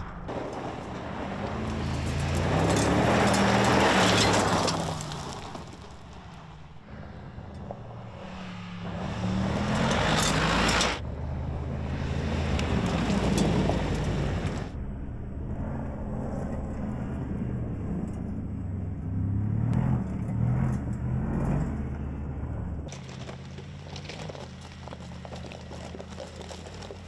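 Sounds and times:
tyres spraying gravel: 0.3s - 6.5s, 22.9s - 27.0s
suv engine running under load: 17.4s - 27.0s.

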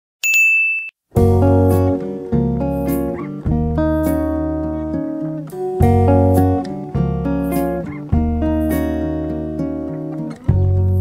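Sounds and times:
bright electronic ding: 0.2s - 1.0s
strummed guitar music: 1.2s - 11.0s.

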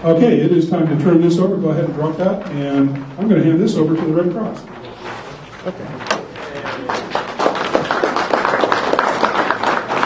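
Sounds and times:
scattered handclaps: 6.6s - 10.0s.

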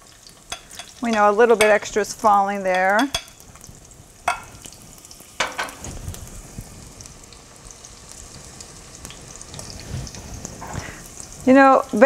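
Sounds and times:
vegetables sizzling in pot: 0.0s - 12.0s.

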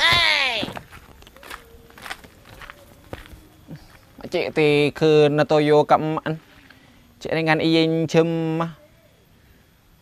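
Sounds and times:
faint footsteps: 0.0s - 5.0s.

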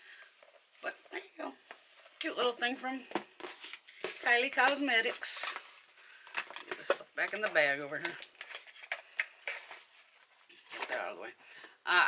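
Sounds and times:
cosmetic packages clicking and rustling: 1.7s - 11.8s.

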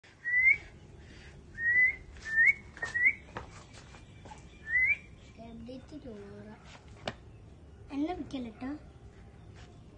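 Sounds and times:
person whistling: 0.2s - 0.7s, 1.6s - 3.2s.

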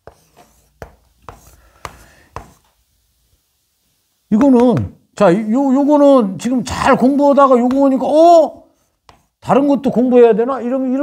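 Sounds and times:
chalk tapping on chalkboard: 0.0s - 2.8s, 4.3s - 4.9s, 7.3s - 9.6s
chalk scratching strokes: 0.0s - 6.1s, 6.7s - 9.9s.

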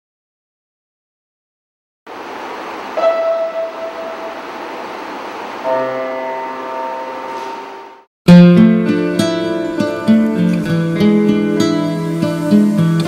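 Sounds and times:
steady hiss: 2.1s - 6.2s, 9.3s - 13.0s
soft held chord: 3.0s - 4.8s, 5.6s - 8.0s
held synth note: 3.0s - 5.0s, 5.6s - 8.1s.

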